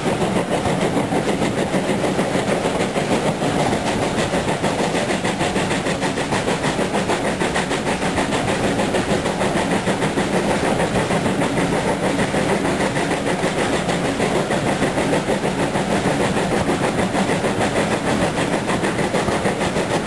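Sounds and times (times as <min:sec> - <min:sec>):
train running: 0:00.0 - 0:20.0.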